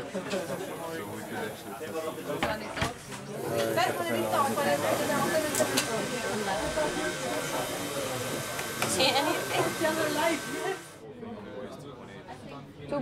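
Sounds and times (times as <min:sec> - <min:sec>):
indistinct conversation: 0:00.0 - 0:13.0.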